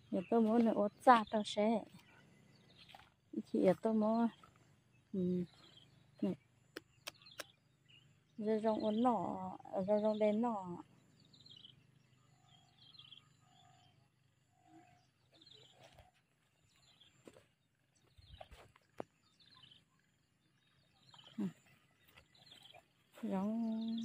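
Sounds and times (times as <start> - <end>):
faint bird chirps: 0.0 - 24.0.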